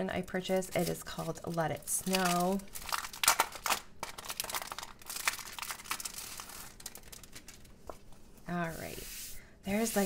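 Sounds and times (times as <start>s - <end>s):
plastic sleeve crinkling: 0.6s - 8.8s.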